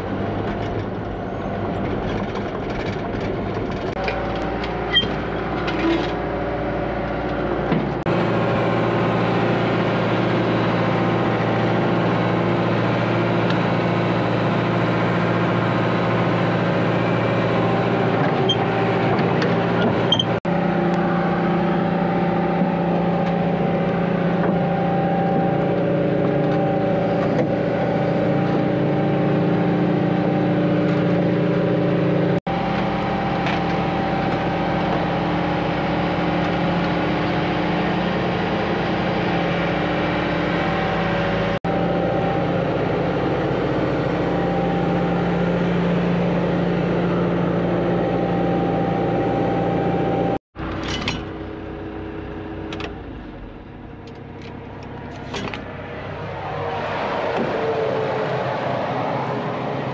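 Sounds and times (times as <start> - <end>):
diesel engine running: 0.0 - 59.9.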